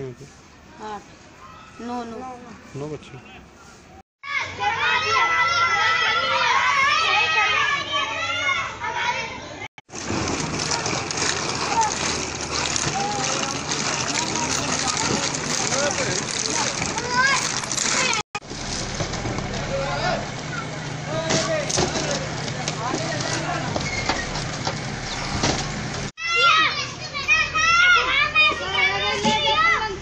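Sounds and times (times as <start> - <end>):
children shouting at play: 1.4 - 2.1, 4.2 - 9.6, 15.7 - 18.2, 26.2 - 30.0
people talking: 11.6 - 18.2.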